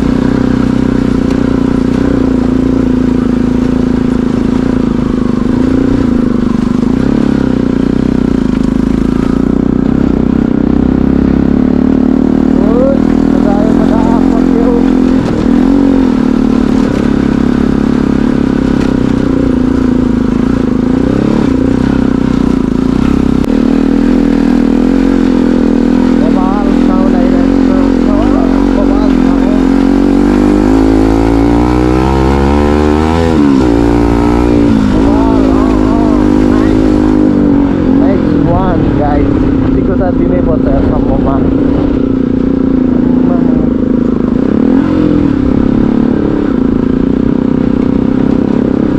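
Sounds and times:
motorcycle engine running: 0.0s - 48.9s.

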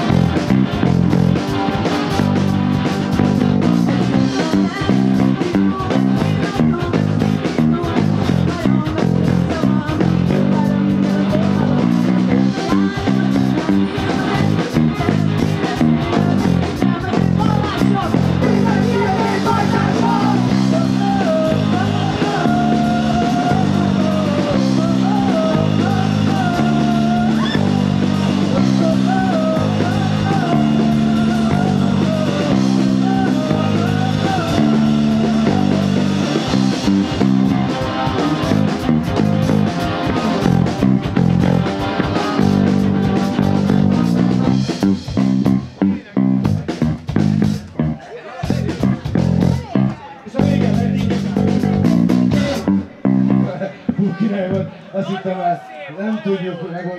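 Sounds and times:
live rock band playing: 0.0s - 55.0s
woman singing: 4.2s - 36.5s.

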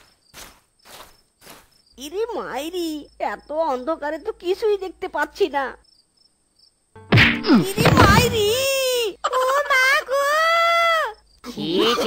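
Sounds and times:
footsteps walking: 0.0s - 1.8s
crickets chirping: 0.0s - 12.0s.

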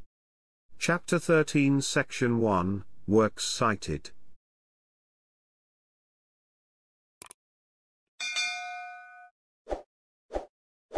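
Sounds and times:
notification ding: 8.2s - 9.3s.

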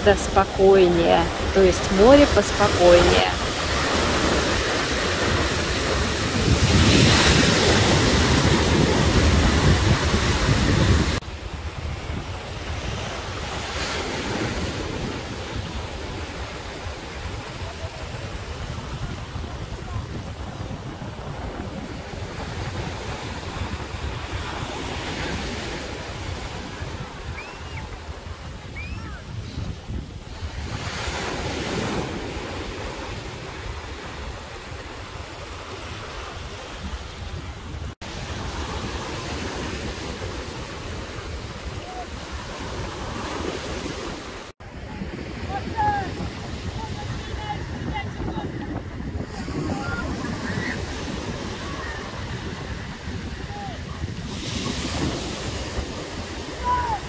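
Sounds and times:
small waves breaking on beach: 0.0s - 57.0s
wind buffeting microphone: 0.0s - 57.0s.

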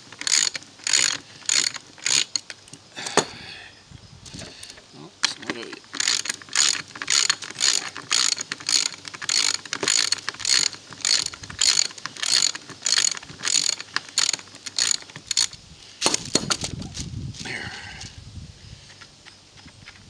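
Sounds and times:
ratchet wrench clicking: 0.2s - 2.8s, 4.6s - 15.6s.

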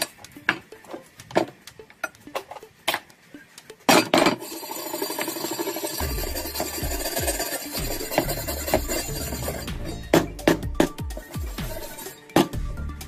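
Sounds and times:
loud metal clatter: 4.3s - 10.3s
hand tool scraping rusty steel: 4.3s - 12.4s.

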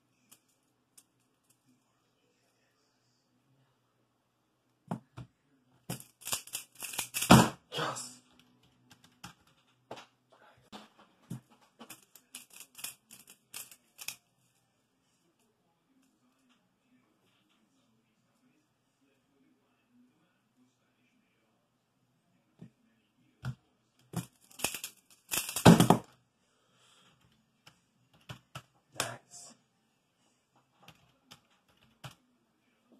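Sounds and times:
plastic puzzle clicks and rattles: 5.9s - 7.3s, 10.8s - 14.3s, 24.0s - 26.2s.

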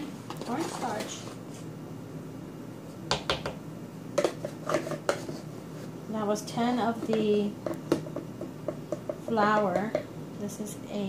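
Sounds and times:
spoon scraping plastic container: 4.2s - 5.5s.

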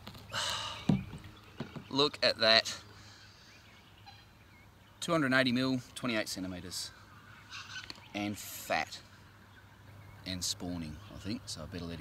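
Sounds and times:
faint short bird calls: 6.9s - 9.2s.

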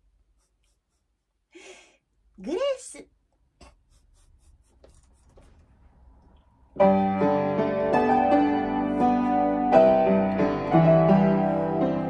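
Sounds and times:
faint rustling: 4.2s - 6.6s.

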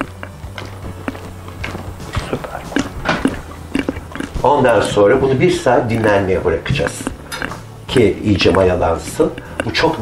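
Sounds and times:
background music: 0.0s - 10.0s
dough being kneaded by hand: 0.0s - 10.0s
steady low hum: 0.0s - 10.0s.

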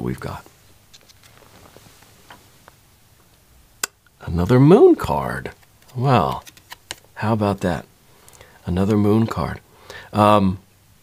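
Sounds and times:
card handling ticks: 5.5s - 7.0s.

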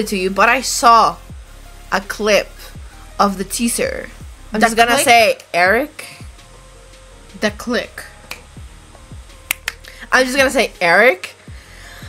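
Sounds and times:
background music with low beat: 0.0s - 12.0s
finger snaps: 8.2s - 8.5s, 9.4s - 10.0s.

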